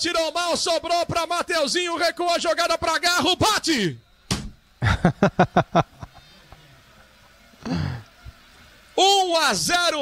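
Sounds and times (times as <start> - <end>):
man laughing: 4.8 - 6.3.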